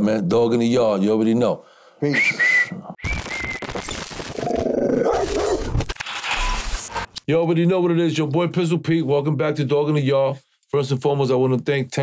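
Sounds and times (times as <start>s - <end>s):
dog bark-growl: 4.9s - 5.7s.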